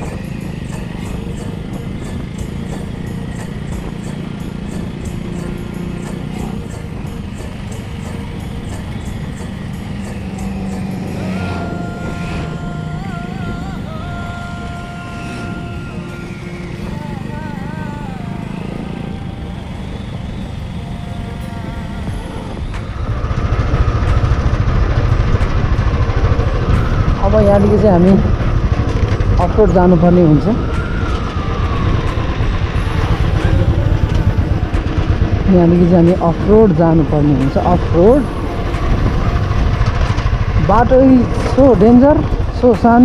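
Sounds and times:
motorcycle engine running: 0.0 - 43.0
road wind rumble: 0.0 - 43.0.

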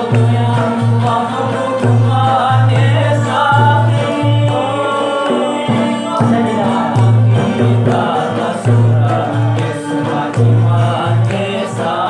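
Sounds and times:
man singing: 0.0 - 12.0
plucked sitars: 0.0 - 12.0.

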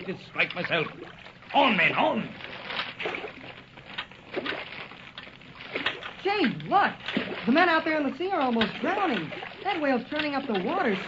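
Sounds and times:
oars splashing: 0.0 - 11.0
water sloshing: 0.0 - 11.0.

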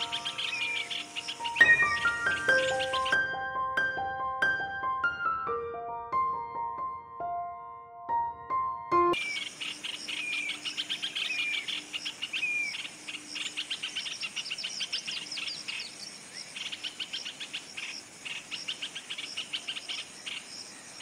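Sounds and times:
bird rattling babbling song: 0.0 - 3.2
bird whistled notes: 0.0 - 3.2.

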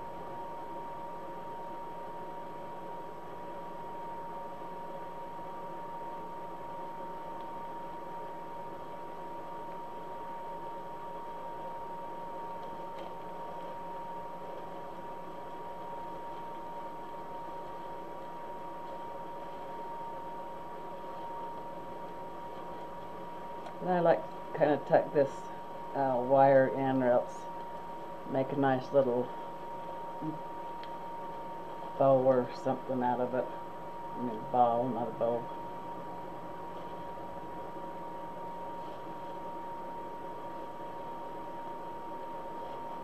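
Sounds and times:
high-pitched whine: 28.2 - 35.8.

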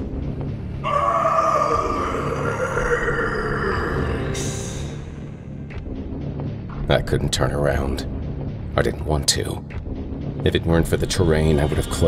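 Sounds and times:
low dark background music: 0.0 - 12.0
creature growling: 0.9 - 5.2.

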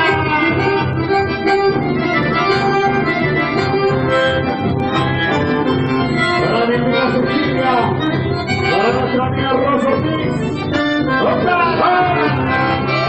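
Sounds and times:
accordion and bandoneon melody: 0.0 - 13.0
electric bass: 0.0 - 13.0.

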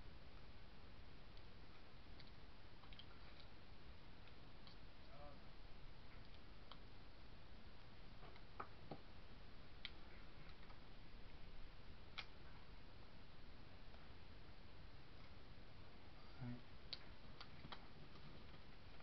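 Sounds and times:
steady low hiss: 0.0 - 19.0.

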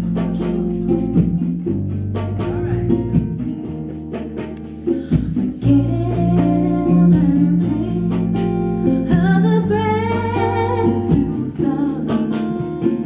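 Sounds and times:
acoustic guitar: 0.0 - 13.0
low bass notes: 0.0 - 13.0
woman singing: 4.9 - 13.0.

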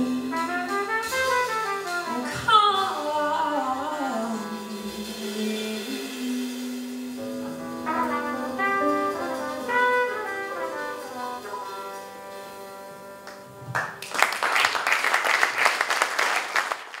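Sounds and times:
trumpet lead: 0.0 - 13.6
jazz band playing: 0.0 - 15.0
audience applause: 13.7 - 17.0.

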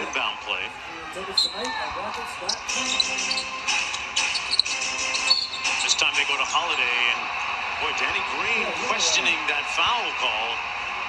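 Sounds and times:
arena noise: 0.0 - 11.0
sneakers squeaking: 1.3 - 6.7
referee whistle: 2.5 - 6.2.

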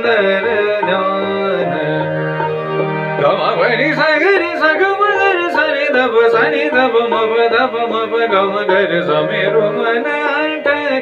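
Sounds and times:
man singing classical vocal runs: 0.0 - 2.5, 3.2 - 11.0.

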